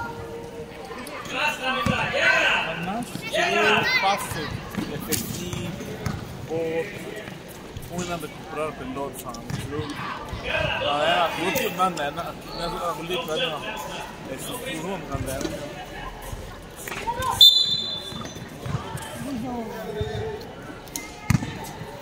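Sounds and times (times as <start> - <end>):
people calling out: 17.0 - 18.4
basketball bouncing on hard court: 21.3 - 21.6.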